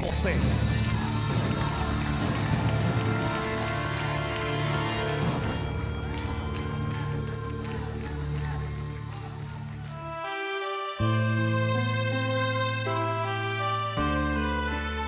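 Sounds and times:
instrumental ballad music: 0.5 - 15.0.

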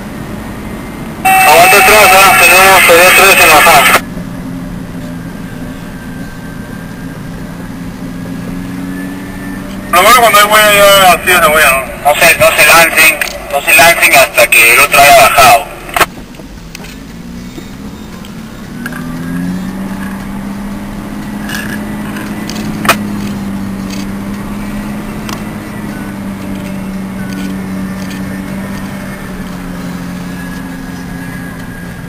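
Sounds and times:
vehicle engine revving: 0.0 - 32.0
sharp click: 22.4 - 23.0.

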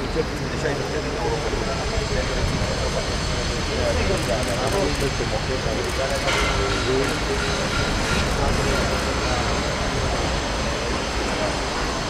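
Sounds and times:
crowd of reporters talking: 0.0 - 12.0.

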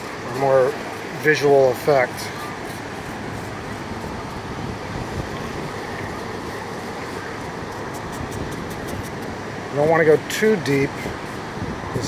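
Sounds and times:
beach noise rushing: 0.0 - 12.0.

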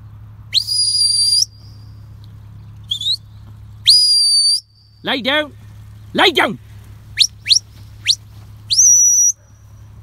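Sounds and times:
shepherd's rising whistle: 0.5 - 1.9, 2.9 - 3.2, 3.8 - 4.8, 7.2 - 9.4
short rising whistle chirp: 0.5 - 2.0, 2.9 - 5.0, 7.2 - 9.4.

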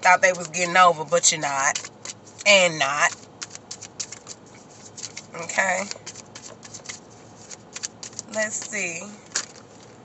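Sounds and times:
cards being shuffled: 1.6 - 10.0.

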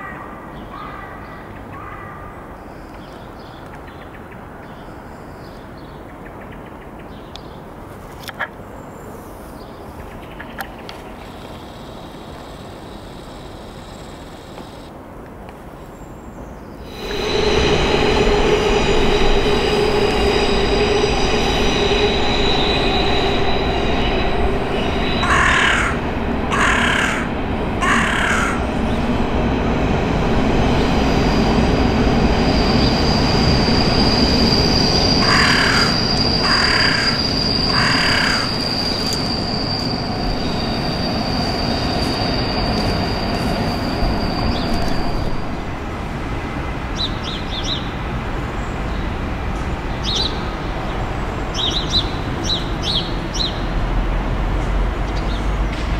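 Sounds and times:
train wheels squealing on track: 16.8 - 47.9
train rumble: 16.8 - 55.9
crow cawing: 25.2 - 28.6, 35.2 - 38.5.

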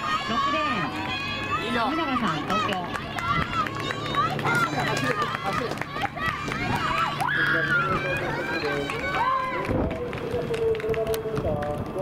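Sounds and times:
spectators shouting encouragement: 0.0 - 9.9.

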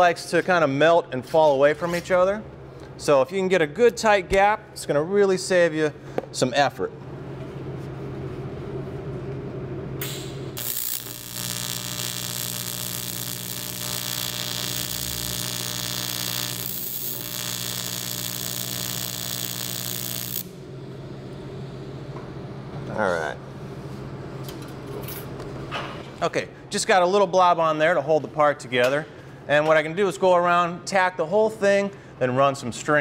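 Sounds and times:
welding arc buzzing with hiss: 10.0 - 20.7.

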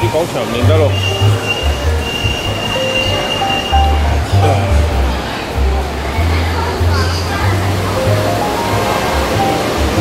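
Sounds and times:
busy street noise: 0.0 - 10.0.

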